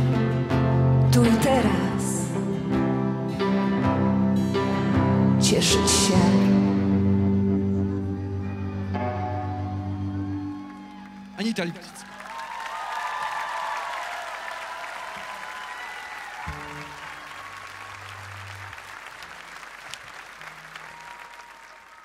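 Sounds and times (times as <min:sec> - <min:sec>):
audience applauding and cheering: 0:07.7 - 0:22.0.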